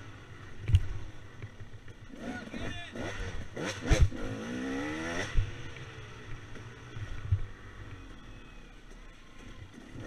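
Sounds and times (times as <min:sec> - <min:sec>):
dirt bike engine revving: 0:00.0 - 0:08.1.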